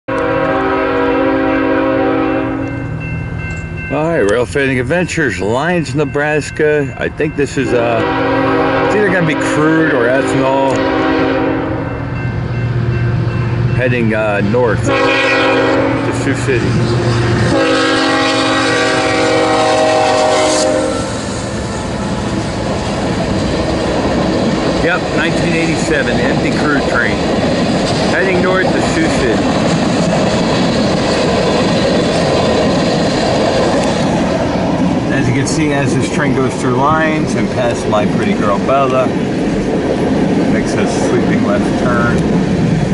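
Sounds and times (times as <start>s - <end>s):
locomotive air horn blast: 0.1s - 2.8s, 8.0s - 11.9s, 14.8s - 21.4s
freight cars rumbling on rails: 0.1s - 42.9s
locomotive engines droning: 0.1s - 42.9s.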